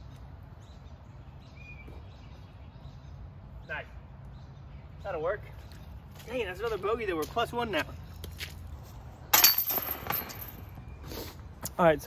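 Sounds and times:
metal chains jangling: 0:09.3 - 0:10.8.

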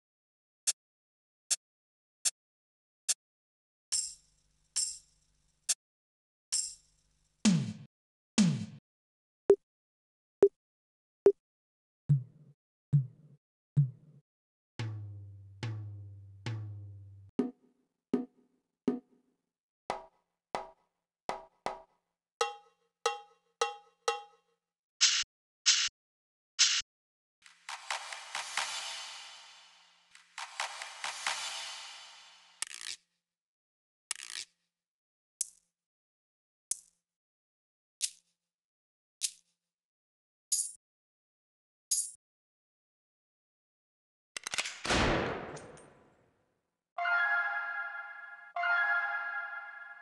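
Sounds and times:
loud gunshot with echo: 0:44.9 - 0:45.9.

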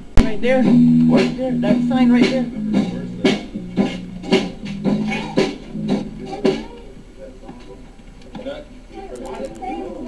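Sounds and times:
guitar playing low chords: 0:00.0 - 0:06.9
drum kit playing: 0:00.0 - 0:07.0.

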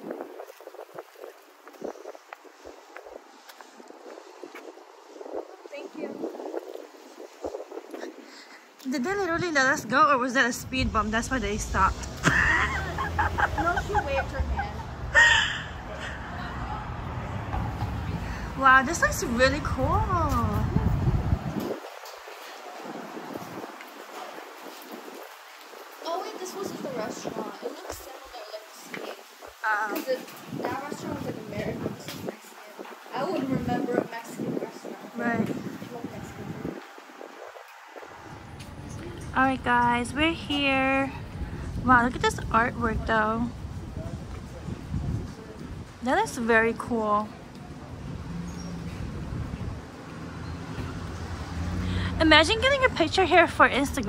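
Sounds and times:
vehicle engine humming: 0:09.8 - 0:21.6.

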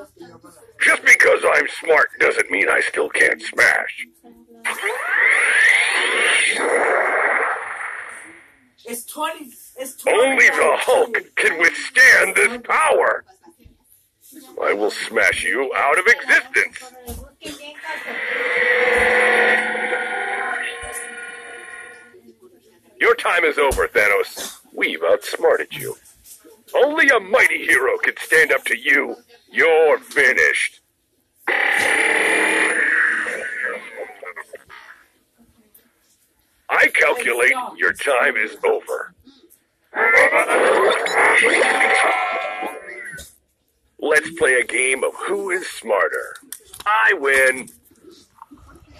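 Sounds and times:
toy voice line: 0:04.6 - 0:08.5, 0:31.5 - 0:34.9, 0:40.0 - 0:43.3
toy speaker blast sound effect: 0:04.7 - 0:08.4
warbling electronic burst: 0:04.7 - 0:08.6, 0:17.9 - 0:22.2, 0:31.5 - 0:34.6.

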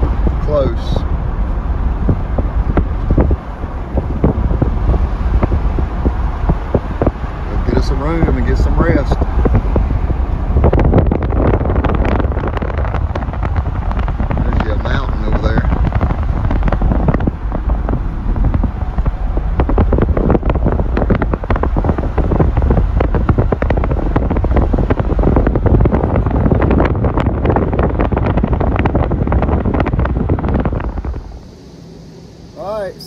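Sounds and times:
road noise: 0:00.0 - 0:33.0
wind buffeting microphone: 0:00.0 - 0:33.0.

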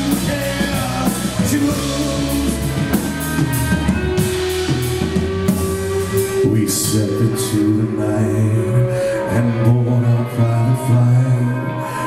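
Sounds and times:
electric guitars: 0:00.0 - 0:12.0
live rock band: 0:00.0 - 0:12.0.

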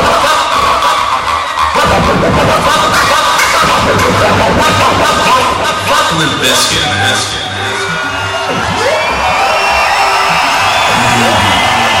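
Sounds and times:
crowd cheering: 0:00.0 - 0:12.0
electronic dance music with pulsing bass: 0:00.0 - 0:12.0.

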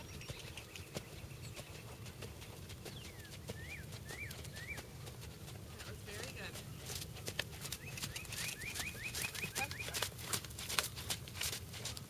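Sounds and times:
small songbird chirping: 0:00.0 - 0:05.0, 0:06.6 - 0:10.0
horse hooves trotting on sand: 0:00.0 - 0:12.0.

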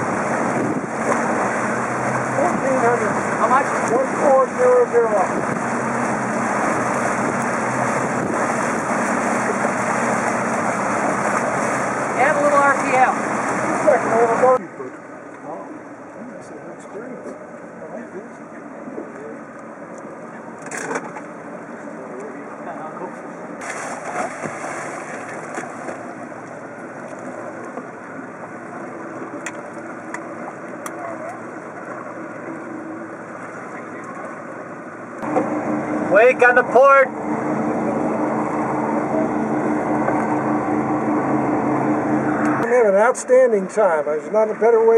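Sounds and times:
boat engine idling: 0:00.0 - 0:44.9
motorboat running at speed: 0:00.0 - 0:44.9.

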